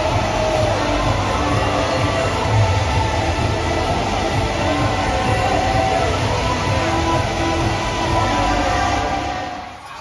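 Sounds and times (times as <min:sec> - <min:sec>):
dense wash of noise: 0:00.0 - 0:09.8
loud music over sound system: 0:00.0 - 0:10.0.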